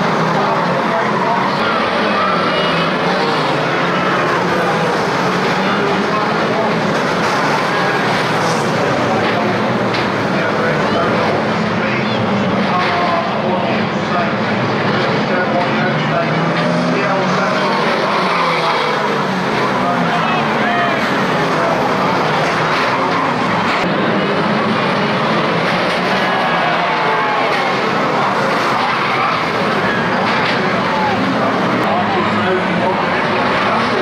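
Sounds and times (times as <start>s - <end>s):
stock car engines revving: 0.0s - 34.0s.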